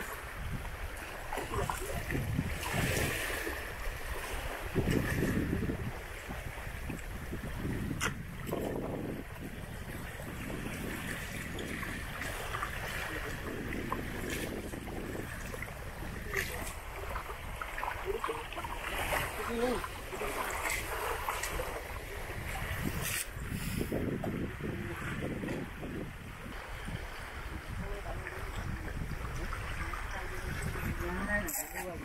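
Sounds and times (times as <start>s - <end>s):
small waves lapping: 0.0s - 32.0s
wind buffeting microphone: 0.0s - 32.0s.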